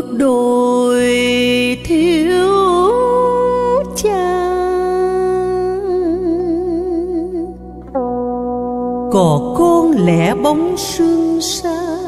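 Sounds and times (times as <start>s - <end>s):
woman singing a long note: 0.0s - 7.5s, 9.1s - 12.0s
low accompaniment: 4.2s - 12.0s.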